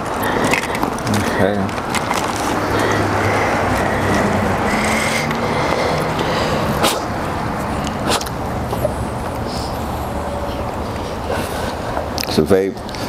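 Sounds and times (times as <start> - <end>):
vehicle engine running: 0.0 - 12.0
outdoor traffic noise: 0.0 - 13.0.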